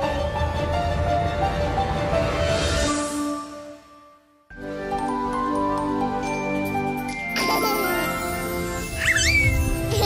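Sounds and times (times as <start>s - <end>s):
light background music: 0.0s - 10.0s
sparkling chime effect: 4.6s - 10.0s
high squeak rising and falling: 8.8s - 9.9s.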